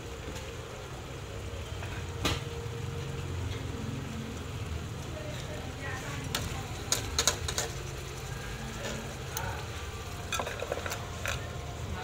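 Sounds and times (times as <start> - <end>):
gas burner rumbling: 0.0 - 12.0.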